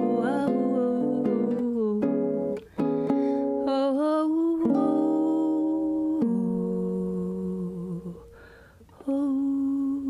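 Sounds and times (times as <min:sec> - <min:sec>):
ukulele chords: 0:00.0 - 0:08.3
faint breath: 0:02.7 - 0:03.5, 0:08.2 - 0:09.0
woman humming: 0:03.9 - 0:08.4, 0:09.0 - 0:10.0.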